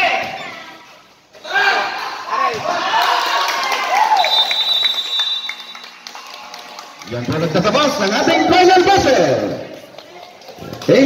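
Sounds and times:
court noise: 0:00.0 - 0:09.6
referee's whistle blast: 0:04.2 - 0:05.8.

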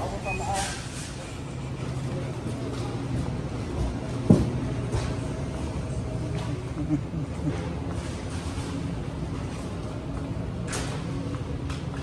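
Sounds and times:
steady low hum: 0:00.8 - 0:12.0.

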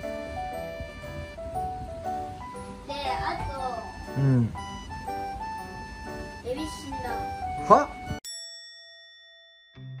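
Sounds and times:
bell-like ding chime: 0:08.2 - 0:10.0.

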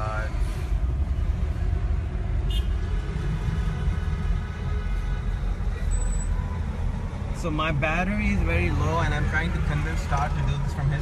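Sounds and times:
road traffic rumble inside car: 0:00.0 - 0:11.0.

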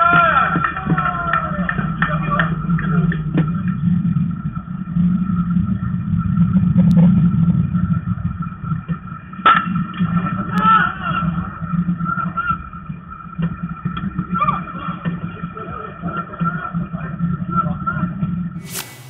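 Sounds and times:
players shouting: 0:00.0 - 0:02.5
low rumble and hum: 0:00.0 - 0:19.0
baseball bat hitting ball: 0:18.6 - 0:19.0.

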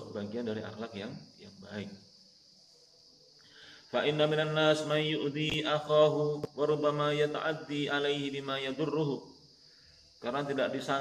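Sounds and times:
man chanting: 0:03.9 - 0:09.3, 0:10.2 - 0:11.0.

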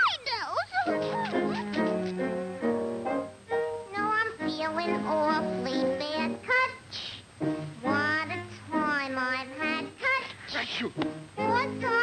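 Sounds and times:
musical accompaniment: 0:00.9 - 0:06.4, 0:07.4 - 0:10.0, 0:10.8 - 0:12.0.

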